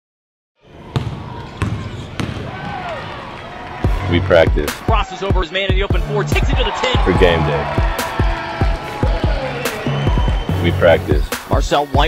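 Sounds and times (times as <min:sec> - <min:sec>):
basketball bouncing on wood floor: 0:00.9 - 0:02.5.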